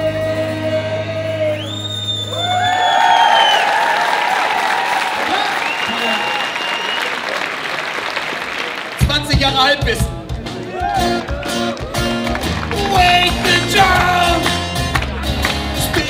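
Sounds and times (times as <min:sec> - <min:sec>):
crowd cheering and screaming: 0:01.6 - 0:08.3, 0:10.6 - 0:14.6
applause: 0:02.4 - 0:09.8, 0:11.2 - 0:16.0.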